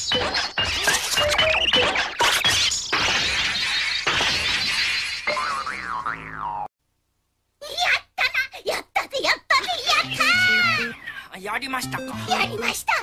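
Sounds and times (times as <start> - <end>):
cartoon boing glide: 5.3 - 6.7
person speaking: 9.5 - 13.0
music: 10.0 - 11.0, 11.6 - 12.8.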